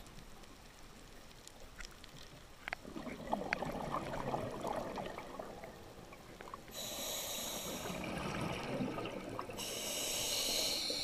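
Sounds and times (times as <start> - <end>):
exhaled bubbles burbling: 2.8 - 6.7, 7.8 - 9.6
regulator hissing inhale: 6.7 - 8.1, 9.6 - 11.0.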